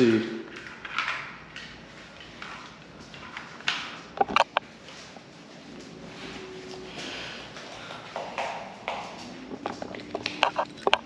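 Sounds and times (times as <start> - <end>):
footsteps: 2.0 - 11.0.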